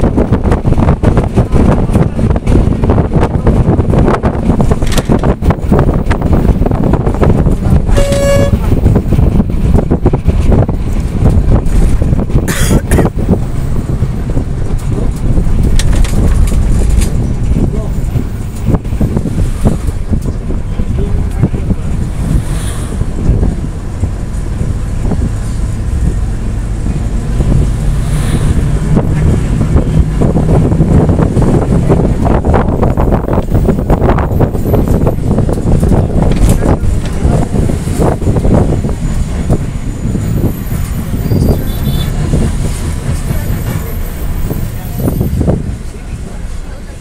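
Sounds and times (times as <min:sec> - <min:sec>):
moving vehicle rumble: 0:00.0 - 0:47.0
wind buffeting microphone: 0:00.0 - 0:47.0
short vehicle horn toot: 0:07.9 - 0:08.6.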